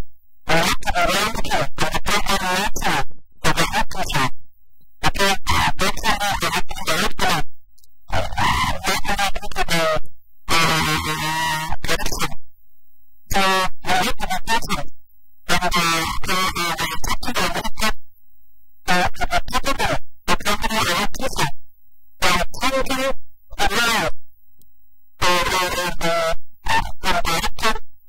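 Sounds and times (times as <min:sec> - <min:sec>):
person talking: 0:00.5 - 0:04.4, 0:08.2 - 0:12.4.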